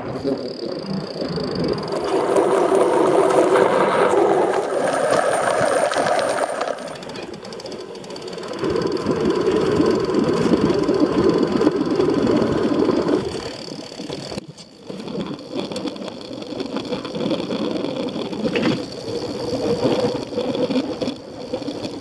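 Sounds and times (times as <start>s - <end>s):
bicycle tyre noise: 0.0s - 22.0s
wind rumble on microphone: 8.4s - 14.4s.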